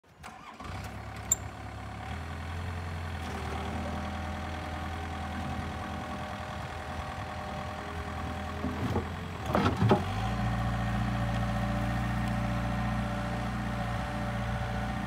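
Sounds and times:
diesel excavator engine running: 0.2s - 15.0s.

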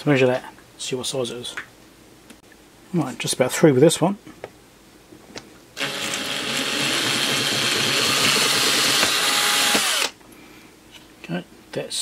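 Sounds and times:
cordless drill boring through plastic: 5.8s - 10.2s.

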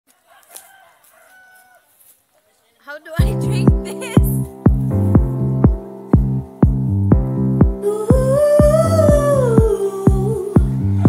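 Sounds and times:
rooster crowing faintly: 0.1s - 2.7s.

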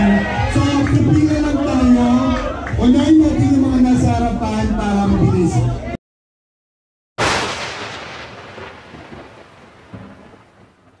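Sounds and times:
loud noisy crash: 7.2s - 11.0s.

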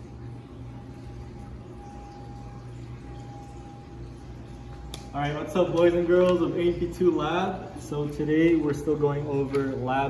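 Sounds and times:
thin high tone: 0.0s - 5.8s
steady low hum: 0.0s - 10.0s.

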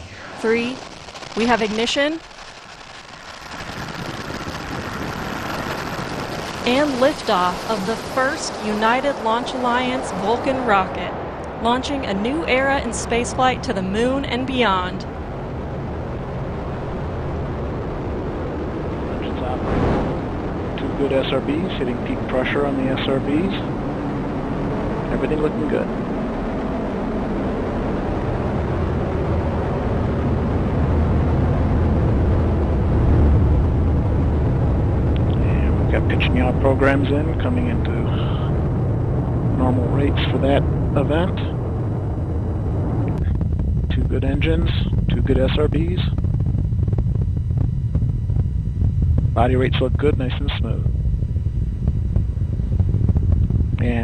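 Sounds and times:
rocket launch rumble: 0.0s - 54.0s.

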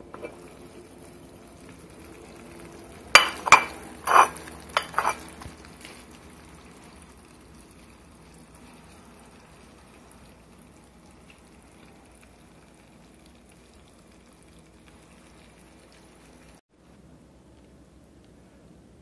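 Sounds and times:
food sizzling and bubbling: 0.0s - 16.7s.

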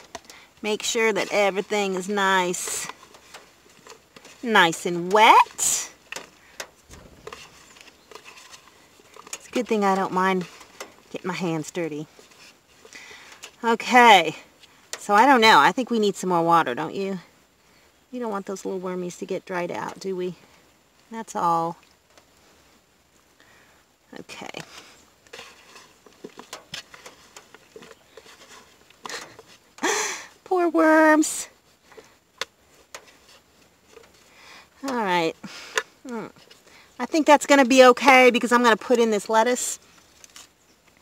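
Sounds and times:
wet paper rustling: 0.0s - 13.6s.

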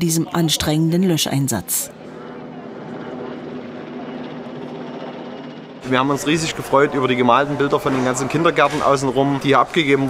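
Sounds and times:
helicopter engine and rotor drone: 1.9s - 10.0s.

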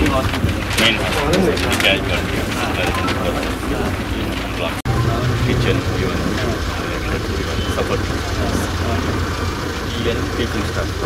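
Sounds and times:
people talking: 0.0s - 11.0s
steady low rumble: 0.0s - 11.0s.

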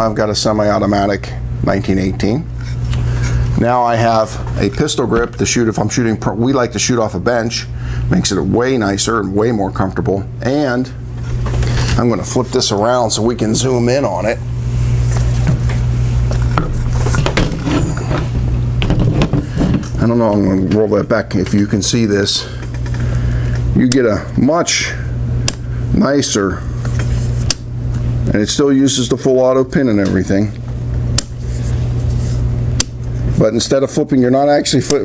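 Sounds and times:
steady low hum: 0.0s - 35.0s
metal and wood knocks and clicks: 16.6s - 19.9s.

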